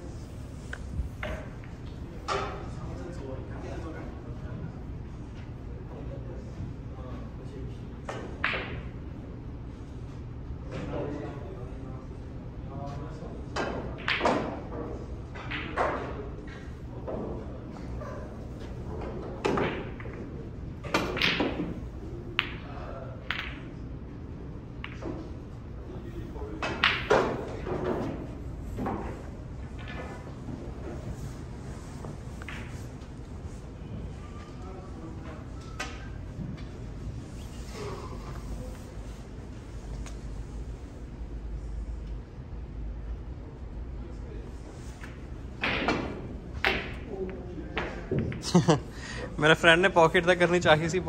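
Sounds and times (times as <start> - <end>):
snooker balls clacking: 0.6 - 2.7, 13.6 - 17.5, 18.4 - 23.8, 24.8 - 25.5, 26.5 - 33.6, 44.7 - 48.5
cue striking ball: 8.4 - 8.9, 13.6 - 14.7, 18.9 - 23.7, 26.6 - 33.6, 44.7 - 48.4.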